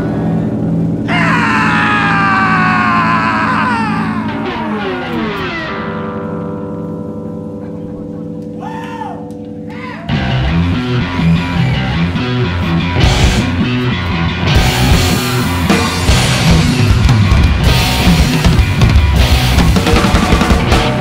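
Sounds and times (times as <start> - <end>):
electric guitar and bass chord ringing: 0.0 - 8.6, 9.3 - 21.0
punk rock band playing: 0.0 - 8.6, 9.3 - 21.0
bent guitar notes: 0.0 - 21.0.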